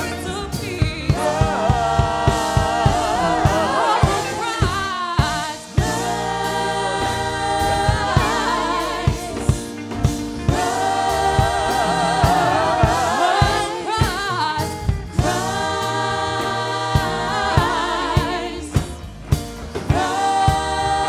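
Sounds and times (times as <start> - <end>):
bass: 0.0 - 21.0
women singing gospel: 0.0 - 21.0
drum hits: 0.8 - 21.0.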